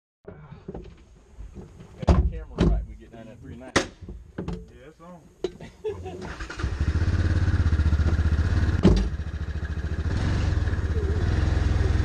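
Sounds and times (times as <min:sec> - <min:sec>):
vehicle door shutting thuds: 0:08.0 - 0:09.2.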